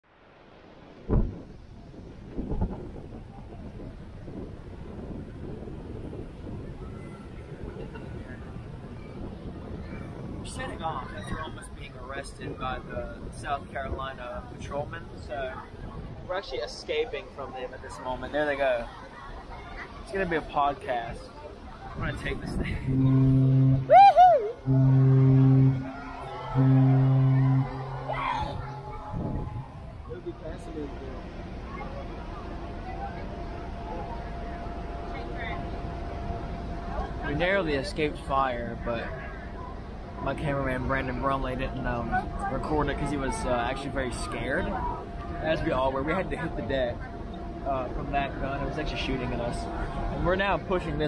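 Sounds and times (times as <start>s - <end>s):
wind buffeting microphone: 0.8s - 51.0s
brief thump: 1.1s - 1.4s
ship horn blast: 22.5s - 30.1s, 38.4s - 50.7s.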